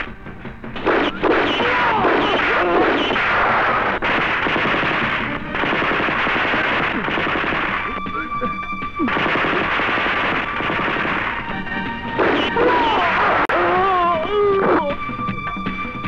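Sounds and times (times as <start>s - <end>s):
dramatic background music: 0.0s - 16.0s
machine-gun fire: 0.8s - 8.0s, 9.0s - 13.0s.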